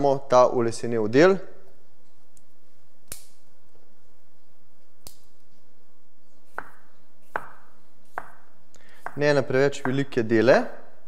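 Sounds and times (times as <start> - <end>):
asparagus snapping: 2.4 - 3.4, 5.0 - 5.3
knife cutting on wooden board: 6.5 - 9.2.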